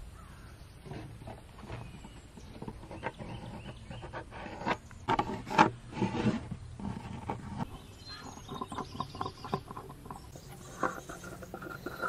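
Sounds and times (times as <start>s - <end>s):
pencil scratching on plywood: 2.7s - 7.7s.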